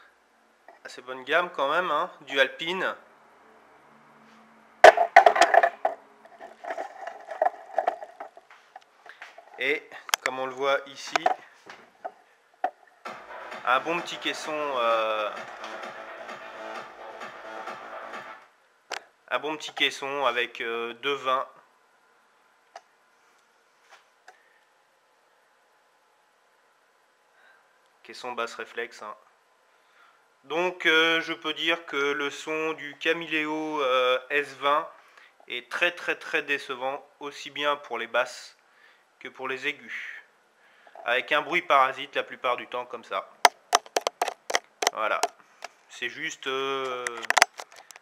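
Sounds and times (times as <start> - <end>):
camera handling knocks and clicks: 11.2 - 11.4, 43.5 - 45.3, 47.1 - 48.0.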